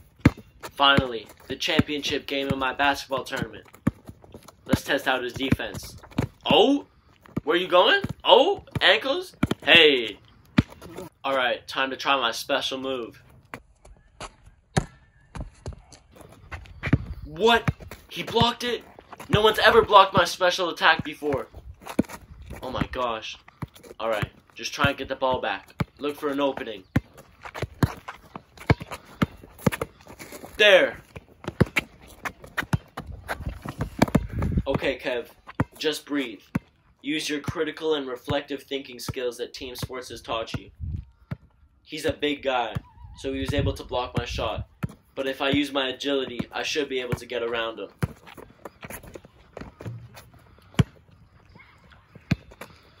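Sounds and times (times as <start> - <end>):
basketball bouncing: 0.1 - 6.5, 7.2 - 9.8, 10.5 - 11.0, 14.7 - 15.8, 16.8 - 30.2, 31.1 - 35.8, 40.5 - 47.3, 47.9 - 51.1, 52.1 - 52.8
shuffling footsteps: 26.4 - 34.8.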